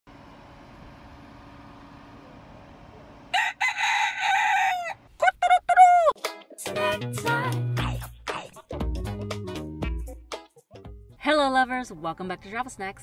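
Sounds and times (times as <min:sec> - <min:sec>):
rooster crowing: 0:03.3 - 0:06.1.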